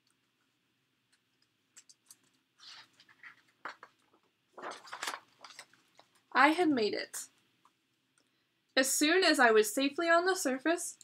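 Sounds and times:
book pages rustling: 2.0s - 6.3s.

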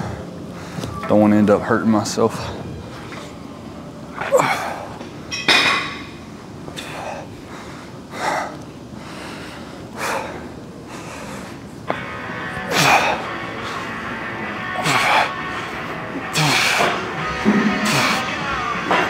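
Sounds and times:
music: 11.9s - 19.0s.

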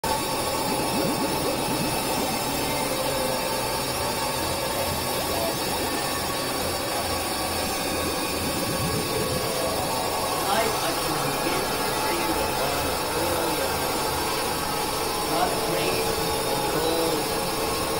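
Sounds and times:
dense noise wash: 0.0s - 17.9s.

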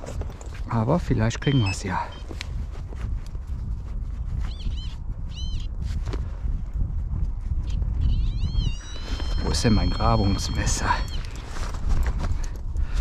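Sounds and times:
metal detector chirps: 1.2s - 2.4s, 8.5s - 11.4s.

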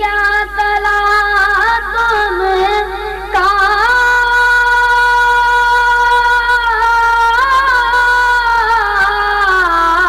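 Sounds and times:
boy singing a long high note: 0.0s - 10.0s.

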